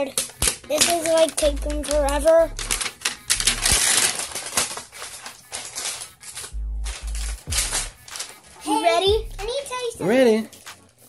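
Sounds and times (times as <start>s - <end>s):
plastic wrapping crinkling: 0.0s - 9.0s.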